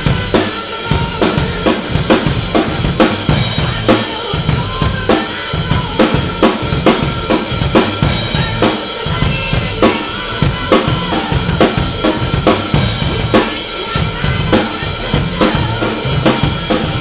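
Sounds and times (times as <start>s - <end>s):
drum kit playing rock beat: 0.0s - 17.0s
sustained guitar and bass: 0.0s - 17.0s.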